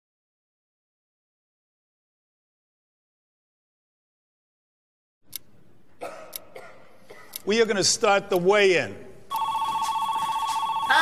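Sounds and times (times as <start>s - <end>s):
telephone ringing: 9.3s - 11.0s.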